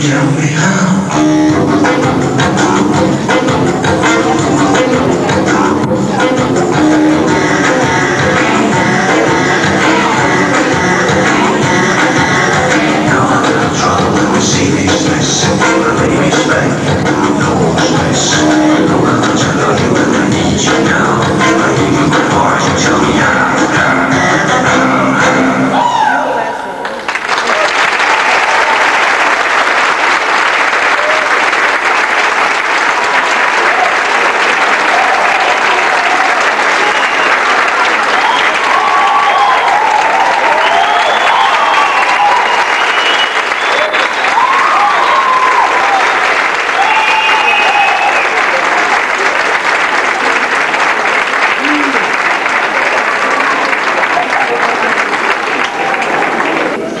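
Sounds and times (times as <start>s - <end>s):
voices cheering: 25.7s - 28.9s, 30.8s - 31.6s, 33.1s - 57.0s
audience applauding: 26.8s - 57.0s.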